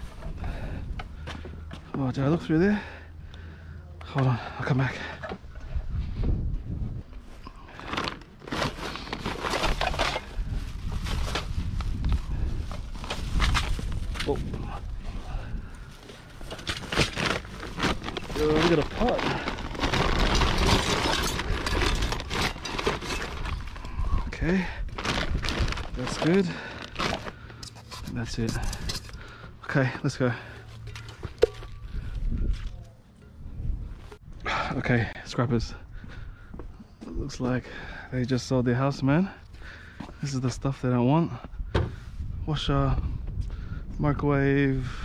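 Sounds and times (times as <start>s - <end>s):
rustling and scraping: 7.0s - 24.1s, 24.9s - 29.5s
junk items knocking and clattering: 7.7s - 11.7s, 15.6s - 24.1s, 24.9s - 29.4s, 30.8s - 32.6s.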